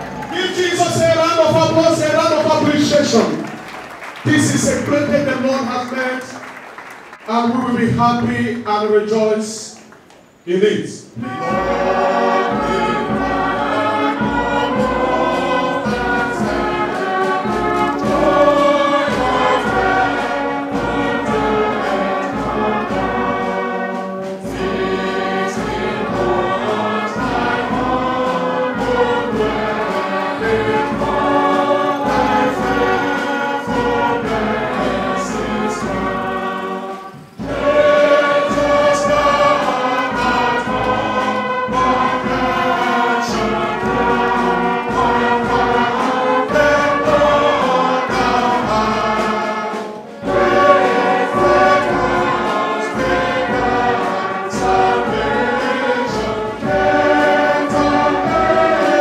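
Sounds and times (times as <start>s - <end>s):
congregation singing a hymn: 0.0s - 59.0s.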